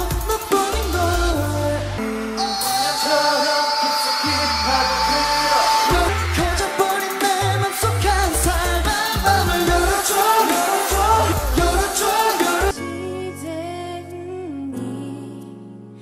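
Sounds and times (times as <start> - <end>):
man singing: 0.0 - 14.1
pop backing track: 0.0 - 16.0
deep pulsing bass line: 7.5 - 10.0.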